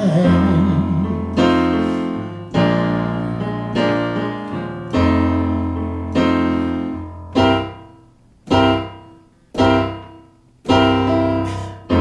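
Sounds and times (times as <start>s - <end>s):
digital piano playing blues: 0.0s - 12.0s.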